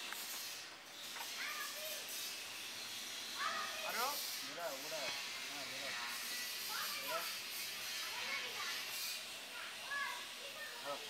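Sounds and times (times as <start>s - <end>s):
faint children's voices: 1.2s - 2.4s, 3.2s - 11.0s.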